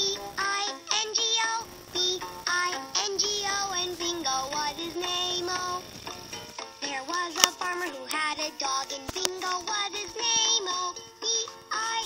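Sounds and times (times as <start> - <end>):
toy playing children's song: 0.0 - 12.0.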